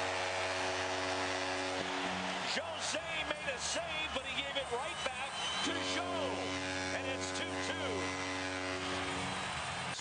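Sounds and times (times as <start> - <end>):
steady droning tone: 5.6 - 9.4.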